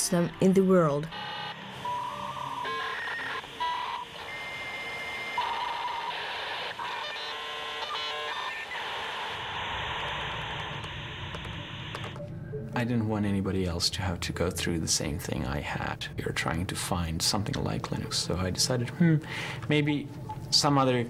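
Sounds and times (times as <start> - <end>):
modem beeps and tones: 0.0 - 12.8
warbling modem handshake tones: 0.0 - 12.8.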